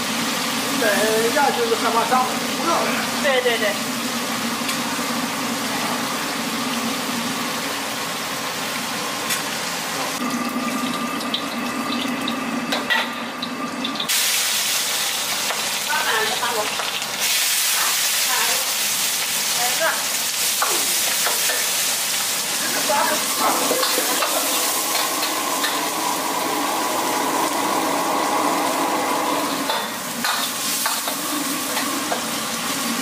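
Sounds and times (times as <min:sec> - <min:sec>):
hot oil sizzling: 0:00.0 - 0:33.0.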